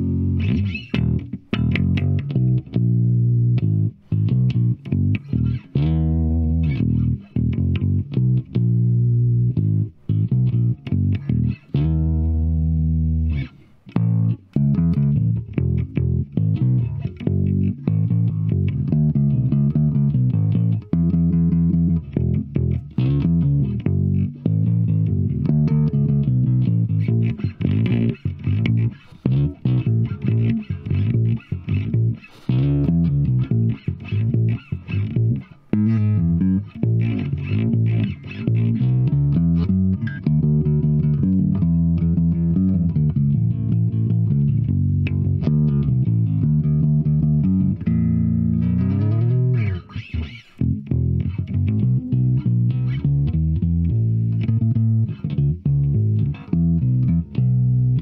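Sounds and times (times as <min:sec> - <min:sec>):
electric bass finger-plucked: 0:00.0 - 0:58.0.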